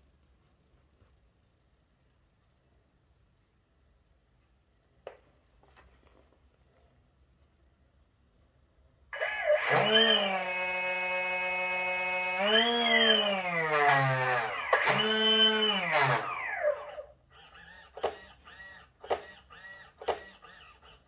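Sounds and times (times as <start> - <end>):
electric motor whining: 9.2 - 21.0.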